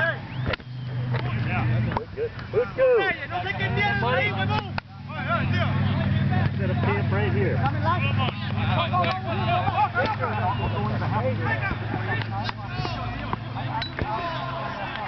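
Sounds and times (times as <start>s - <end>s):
distant players shouting: 0.0s - 15.0s.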